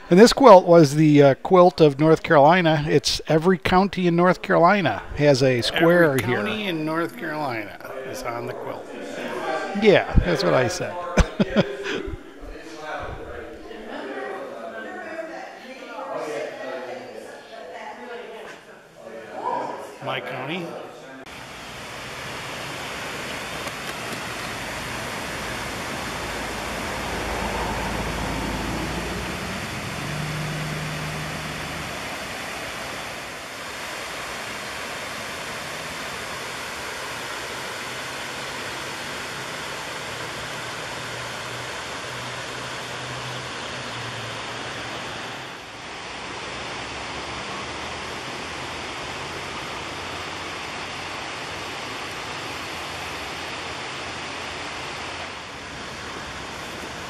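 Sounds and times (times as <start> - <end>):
water rushing over dam and rapids: 21.3 - 57.0.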